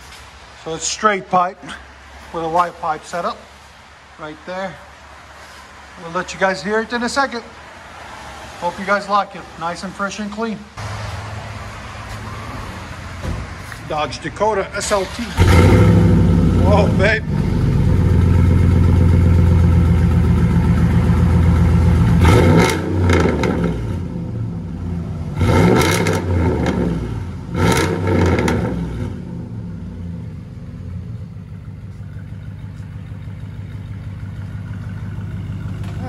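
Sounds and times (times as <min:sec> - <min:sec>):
car engine revving and idling: 0:14.8 - 0:36.0.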